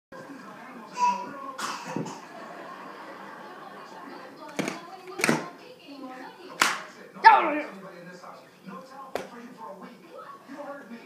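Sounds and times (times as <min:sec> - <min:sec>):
sharp smacks: 0:06.6 - 0:06.9.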